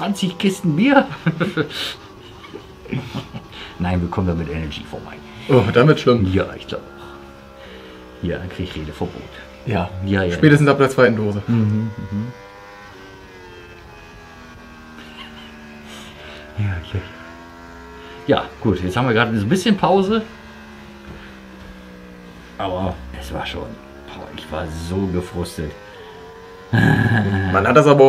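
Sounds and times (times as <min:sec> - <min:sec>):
men talking: 0:00.0 - 0:12.5, 0:15.0 - 0:28.0
racing motorcycle engine high revs: 0:00.0 - 0:28.0
breathy chuckle: 0:01.1 - 0:03.8, 0:15.0 - 0:16.6, 0:26.7 - 0:27.6.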